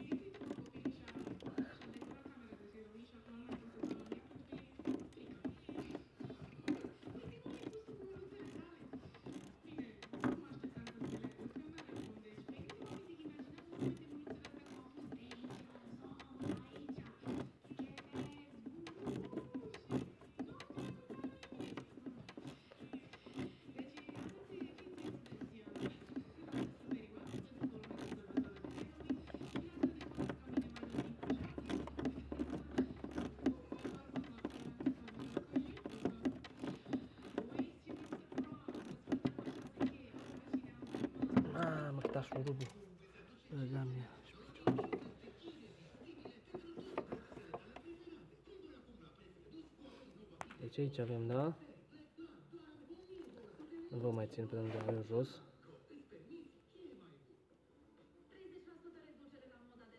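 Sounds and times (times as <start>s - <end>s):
hand tools clicking and rattling: 0.0s - 42.9s, 43.5s - 48.0s.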